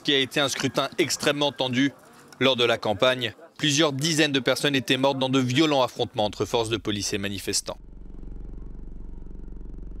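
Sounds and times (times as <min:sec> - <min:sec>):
car engine humming: 0:07.7 - 0:10.0.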